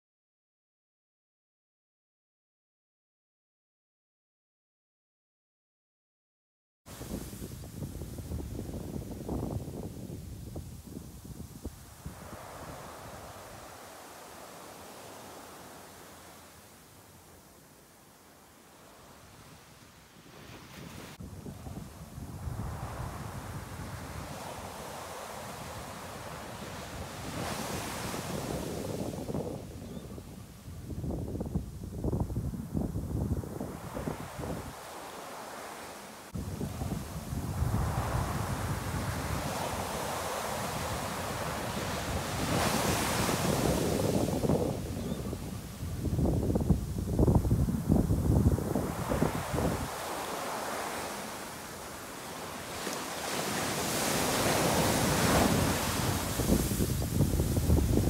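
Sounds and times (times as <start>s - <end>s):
wind buffeting microphone: 6.9s - 13.7s, 20.6s - 34.8s, 36.3s - 51.0s, 53.4s - 58.0s.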